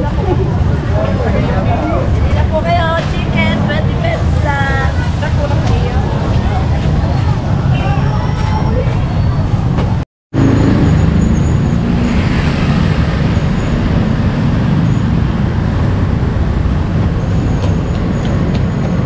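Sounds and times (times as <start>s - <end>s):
motorcycle engines droning: 0.0s - 19.0s
street traffic noise: 0.0s - 19.0s.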